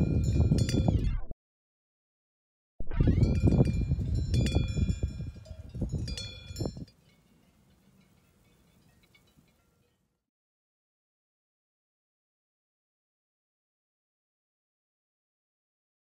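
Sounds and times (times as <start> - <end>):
sheep bells clinking: 0.0 - 1.0, 3.2 - 10.2
wind on microphone: 0.0 - 1.3, 2.8 - 6.9.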